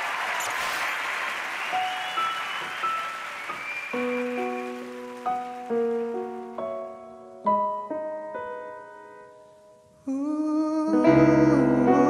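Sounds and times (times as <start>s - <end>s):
applause: 0.0s - 6.8s
slow piano: 1.7s - 12.0s.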